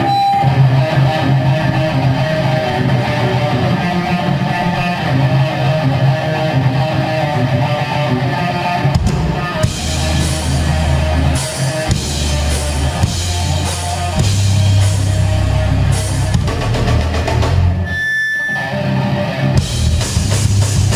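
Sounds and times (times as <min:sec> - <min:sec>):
drums: 0:00.0 - 0:20.9
electric guitar riff: 0:00.0 - 0:20.9.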